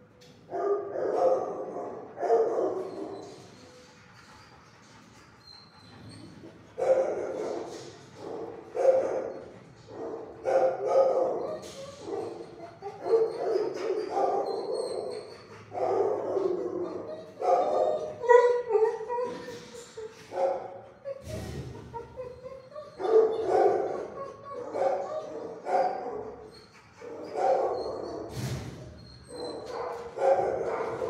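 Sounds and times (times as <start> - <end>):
dogs barking: 0.5 - 3.3, 6.6 - 19.4, 20.3 - 21.2, 22.0 - 28.3, 29.3 - 31.0.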